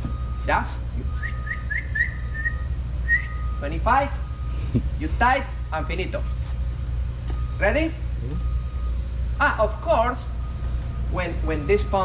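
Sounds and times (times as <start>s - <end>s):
steady low hum: 0.0s - 12.0s
high whistled chirps: 1.1s - 3.6s.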